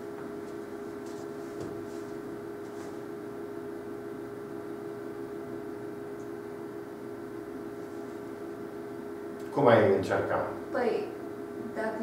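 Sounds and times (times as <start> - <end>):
steady room hum: 0.0 - 12.0.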